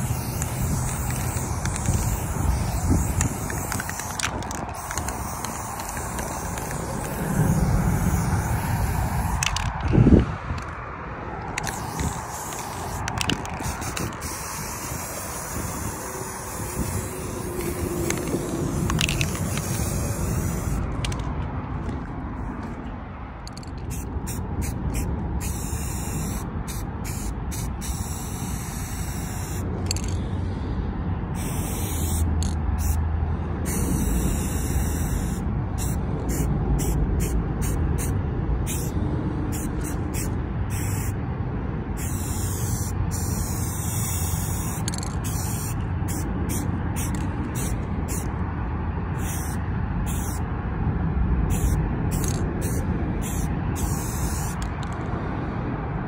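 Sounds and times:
spray paint can hissing: 0:00.0 - 0:10.0, 0:11.5 - 0:21.3, 0:23.5 - 0:30.2, 0:31.4 - 0:33.0, 0:33.6 - 0:41.2, 0:42.0 - 0:48.3, 0:49.1 - 0:50.4, 0:51.5 - 0:55.1.

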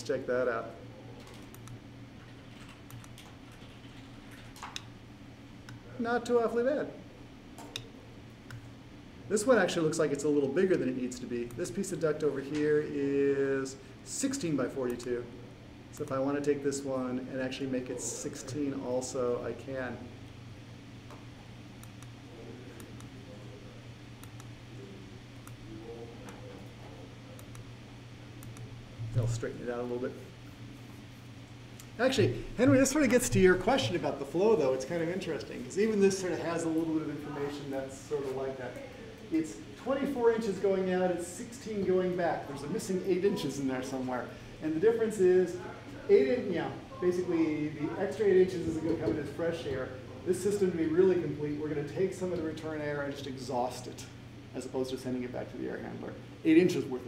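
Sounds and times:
steady low hum: 0:00.0 - 0:57.0
computer keys clicking: 0:01.2 - 0:04.9, 0:24.2 - 0:24.5, 0:27.4 - 0:27.7.

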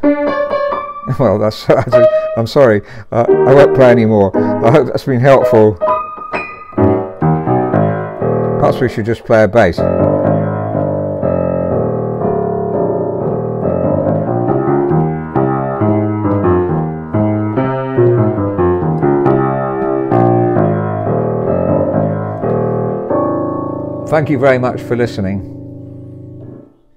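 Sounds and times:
out of tune piano playing: 0:00.0 - 0:26.9.

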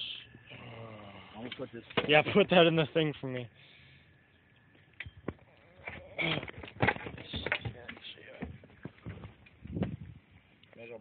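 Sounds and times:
knocks on wooden boards: 0:06.5 - 0:10.0.

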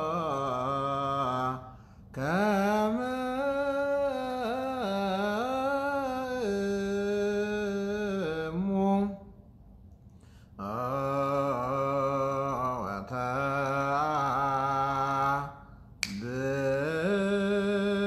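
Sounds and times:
man chanting: 0:00.0 - 0:09.4, 0:10.6 - 0:18.0.

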